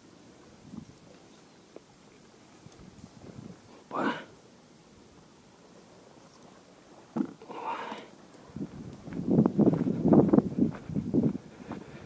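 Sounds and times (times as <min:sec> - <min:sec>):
footsteps on dry dirt and leaves: 0:08.5 - 0:12.0.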